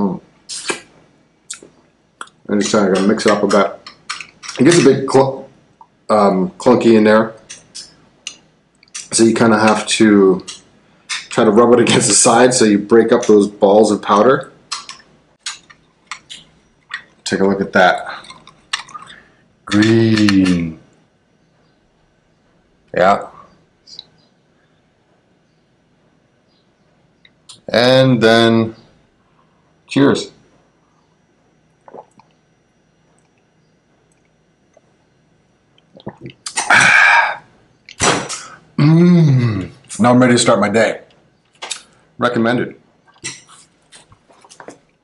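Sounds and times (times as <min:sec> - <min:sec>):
man swallowing: 0:31.8 - 0:32.4, 0:35.8 - 0:39.9.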